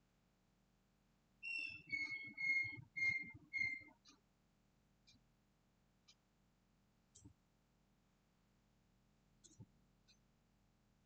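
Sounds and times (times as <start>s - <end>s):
short whistled notes: 1.4s - 3.9s
faint clicks: 7.1s - 7.4s, 9.4s - 10.2s.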